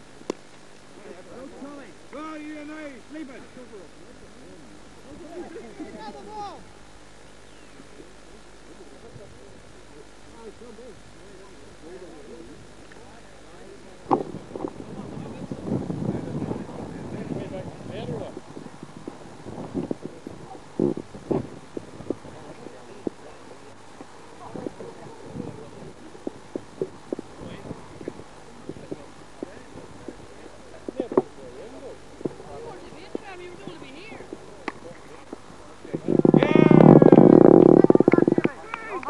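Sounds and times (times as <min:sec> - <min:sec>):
faint voices: 0:00.0 - 0:39.0.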